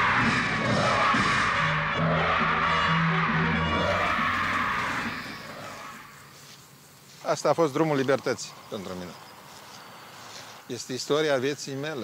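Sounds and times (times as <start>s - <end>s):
people singing a song: 0.0s - 6.2s.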